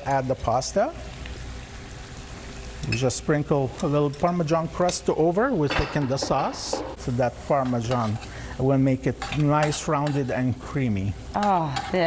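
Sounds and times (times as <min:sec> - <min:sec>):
shrimp sizzling in a pan: 0:00.0 - 0:12.0.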